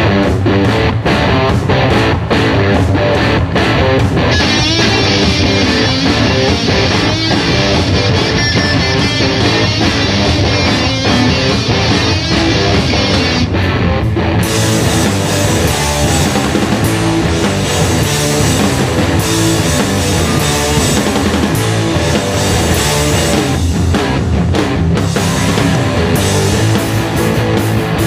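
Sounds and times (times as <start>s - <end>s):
rock band playing loudly: 0.0s - 28.0s.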